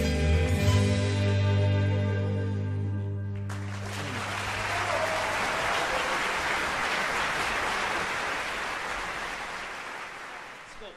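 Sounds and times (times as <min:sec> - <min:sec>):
audience applauding: 0:03.5 - 0:10.9.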